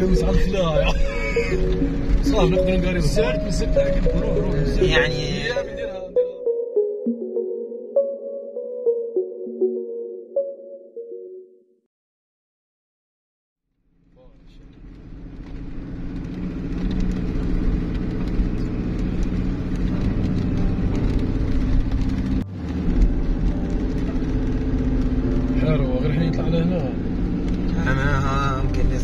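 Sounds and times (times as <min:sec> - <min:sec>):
car engine and road noise: 0:00.0 - 0:08.1, 0:13.7 - 0:29.0.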